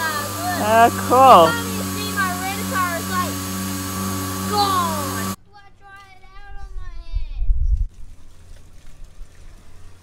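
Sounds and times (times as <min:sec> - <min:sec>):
steady machine hum: 0:00.0 - 0:05.4
faint voice: 0:00.6 - 0:01.6.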